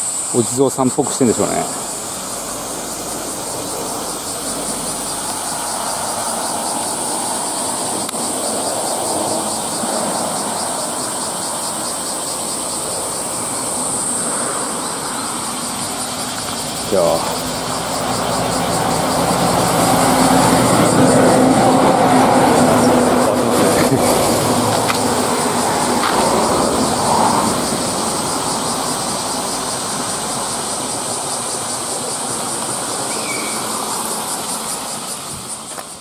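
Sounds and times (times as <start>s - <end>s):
steady engine hum: 0.0s - 36.0s
large vehicle passing: 1.0s - 35.6s.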